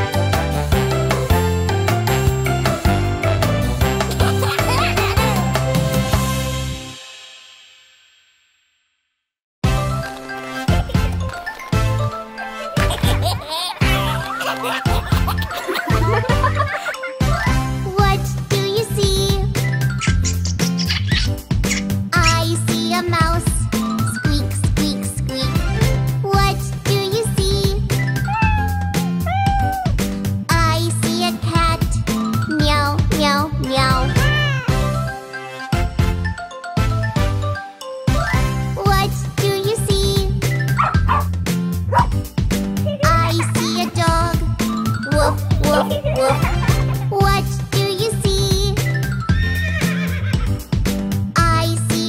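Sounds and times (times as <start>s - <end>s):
cheerful children's song music: 0.0s - 7.4s, 9.6s - 52.0s
children's song with steady beat: 17.8s - 19.8s, 22.2s - 27.9s, 30.5s - 34.4s, 38.7s - 41.2s, 43.0s - 49.0s, 51.3s - 52.0s
cat meowing: 28.2s - 29.9s, 34.1s - 34.9s
horse whinny: 49.3s - 50.5s.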